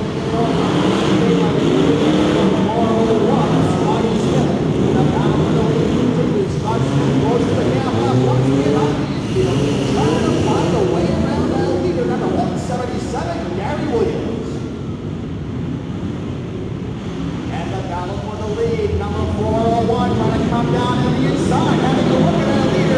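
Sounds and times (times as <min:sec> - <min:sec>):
truck engines revving: 0:00.0 - 0:22.9.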